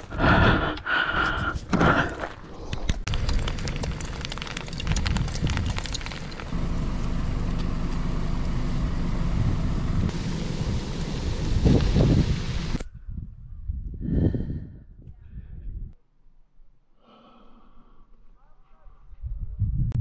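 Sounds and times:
wind rumbling on microphone: 0.0 - 6.5, 9.3 - 16.0, 19.0 - 20.0
camp stove burner rushing: 3.1 - 12.8.

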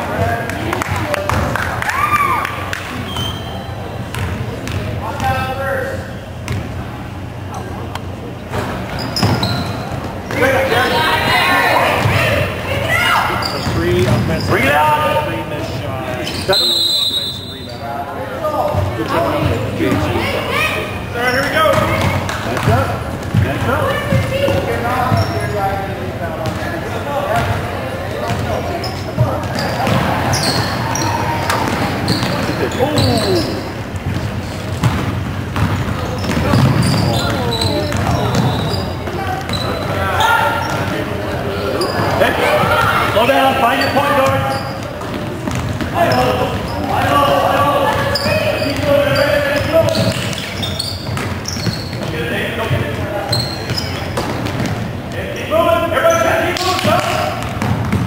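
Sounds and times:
shoes squeaking: 2.9 - 5.4, 8.4 - 14.8, 16.1 - 17.8, 18.6 - 25.7, 28.1 - 58.0
echoing voices: 9.8 - 58.0
basketball dribbling: 29.2 - 39.9, 44.2 - 54.9, 56.9 - 58.0.

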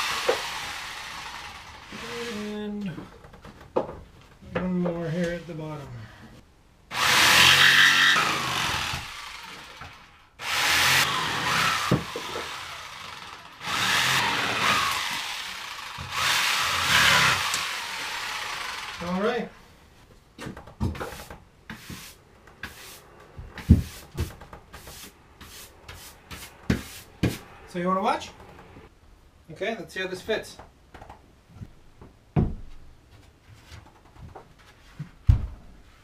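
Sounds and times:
power saw cutting plywood: 0.0 - 2.6, 6.9 - 19.3
brush sweeping sawdust: 21.7 - 23.1, 24.8 - 27.2.

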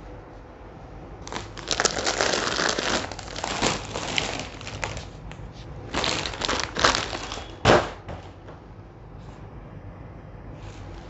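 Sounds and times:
plastic packaging crinkling: 1.2 - 7.9.

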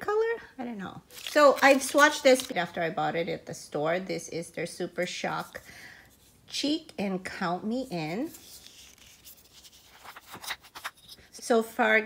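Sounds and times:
hands handling plastic pots: 1.1 - 2.6.

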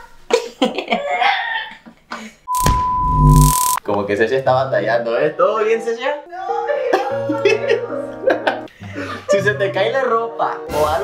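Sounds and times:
high beep tone: 2.5 - 3.8.

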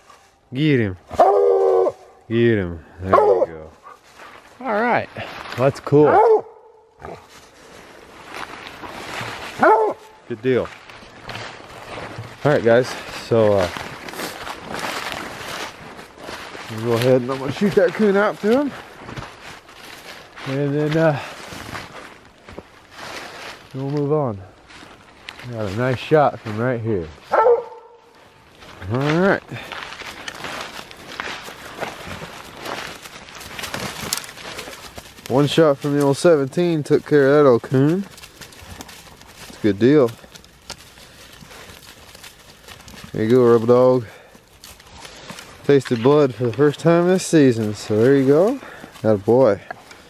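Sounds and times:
rustling in dry brush and leaves: 0.0 - 50.0
dog barking: 1.1 - 2.2, 3.1 - 4.0, 6.0 - 6.9, 9.6 - 10.2, 27.3 - 28.1.

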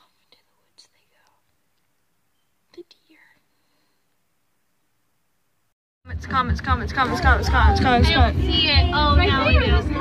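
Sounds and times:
person whispering: 0.0 - 1.5, 2.7 - 3.5.

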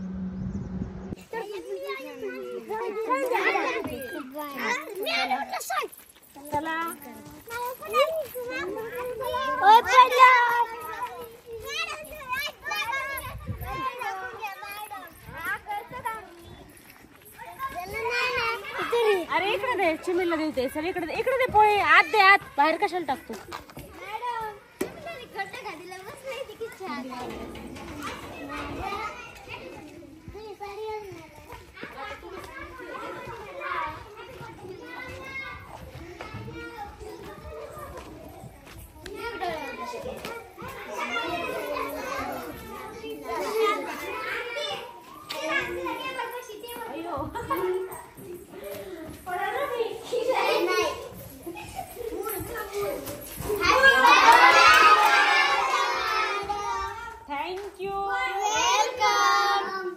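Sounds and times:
children chattering and calling out: 0.0 - 59.9.

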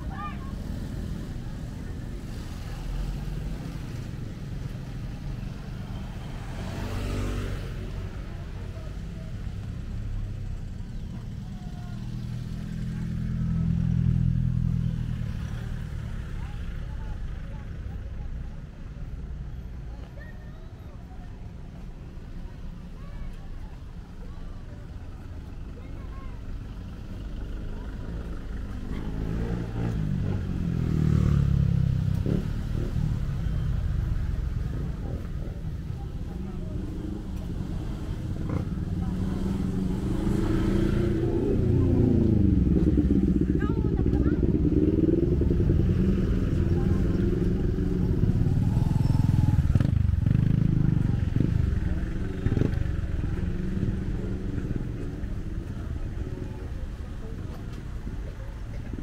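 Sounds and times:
passing cars and motorcycles: 0.0 - 59.0.

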